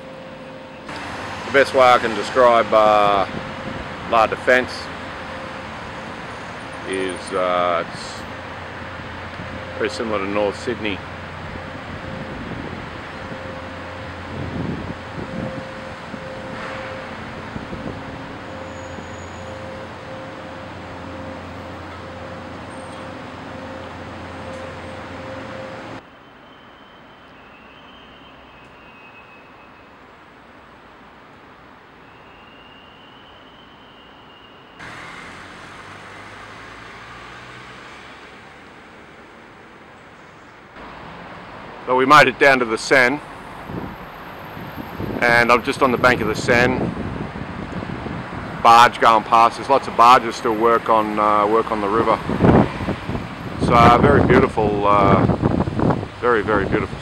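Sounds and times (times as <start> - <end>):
city traffic hum: 0.0 - 57.0.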